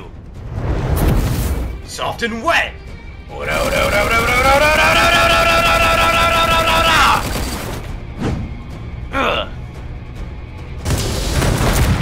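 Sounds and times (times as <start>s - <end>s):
background music: 0.0s - 12.0s
person battle yelling: 3.4s - 7.4s.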